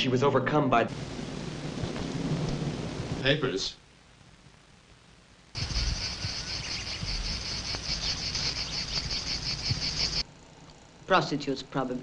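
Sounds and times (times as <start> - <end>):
insects chirring: 5.5 - 12.0.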